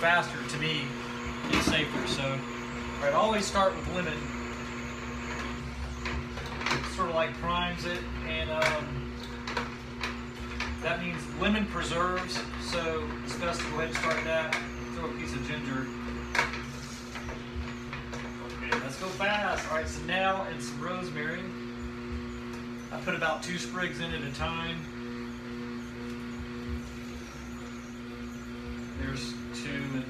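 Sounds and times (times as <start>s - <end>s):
juicer motor humming: 0.0s - 30.0s.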